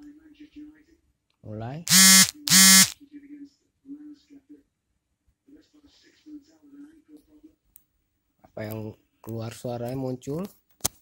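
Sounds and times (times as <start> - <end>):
loud electronic buzzes: 1.9 - 3.0.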